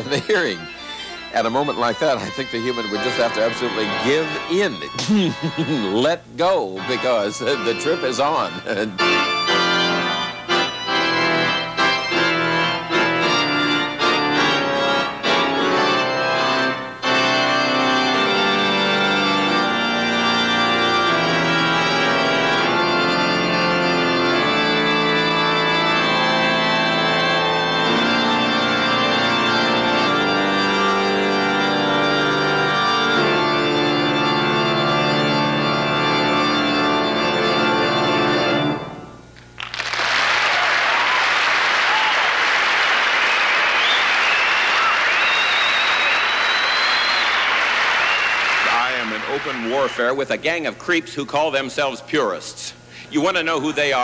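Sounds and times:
electronic organ playing chords: 0.0s - 54.0s
audience applauding: 39.4s - 50.3s
whistles from audience: 39.6s - 42.4s, 43.3s - 50.1s.

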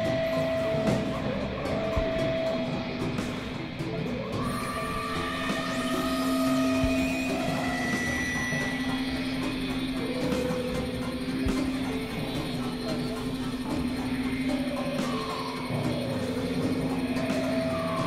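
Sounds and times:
low drone: 0.0s - 18.0s
synthesizer held tones: 3.8s - 18.0s.

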